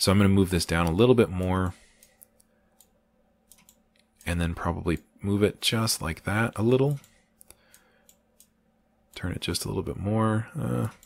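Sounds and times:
faint computer mouse clicks: 2.0s - 5.0s.

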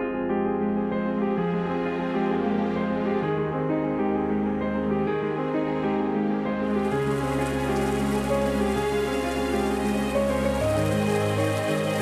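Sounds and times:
slow music with held notes: 0.0s - 12.0s
brine trickling through brushwood: 6.8s - 12.0s.

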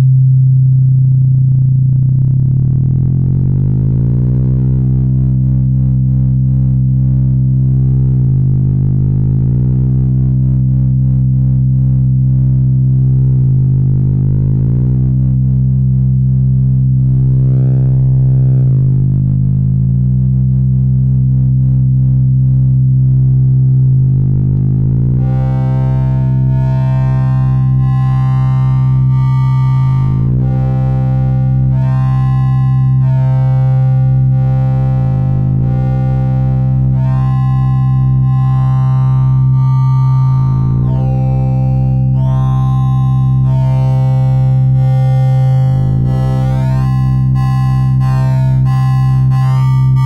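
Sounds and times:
low synthesized tone: 0.0s - 50.0s.

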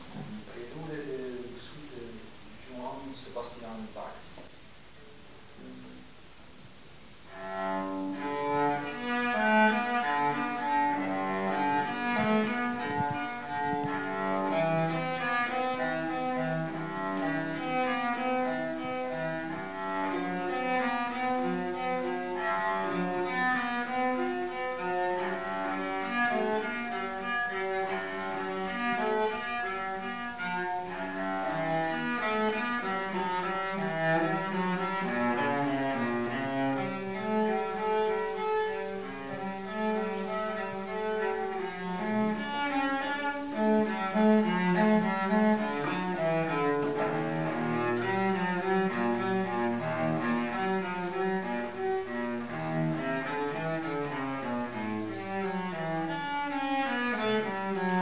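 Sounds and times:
bowed cello melody: 0.0s - 4.5s, 7.2s - 58.0s.

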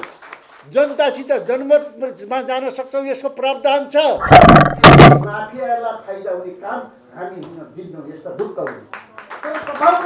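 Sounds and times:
thumps on a podium: 4.2s - 5.4s.

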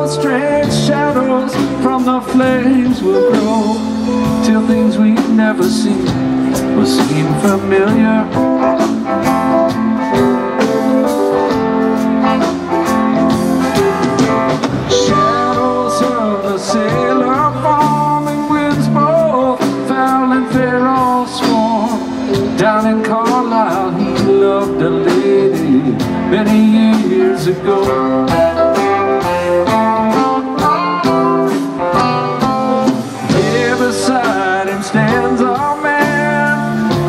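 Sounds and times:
bass guitar: 0.0s - 37.0s
drums: 0.0s - 37.0s
electric guitars: 0.0s - 37.0s.

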